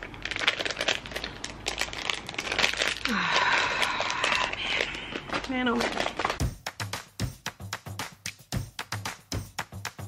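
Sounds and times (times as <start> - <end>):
plastic pouch crinkling: 0.0 - 6.5.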